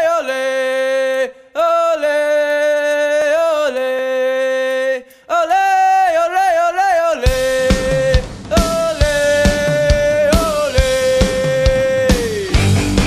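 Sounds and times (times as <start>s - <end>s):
solo voice singing held notes: 0.0s - 12.7s.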